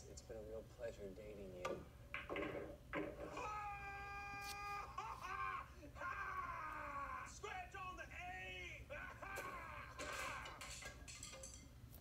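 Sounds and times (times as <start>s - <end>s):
high wailing voice: 3.3s - 7.4s.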